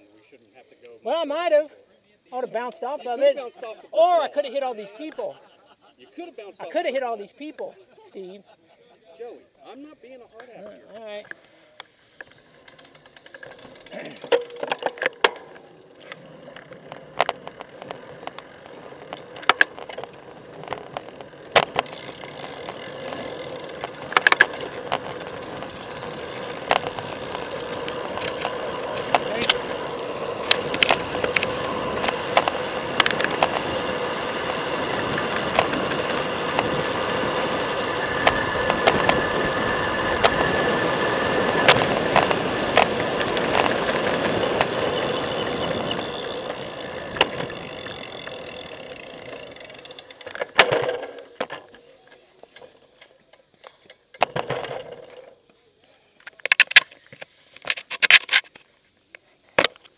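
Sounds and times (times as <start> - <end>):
tyres rolling on pavement: 10.5 - 55.6
sharp clicks and knocks: 23.8 - 25.2.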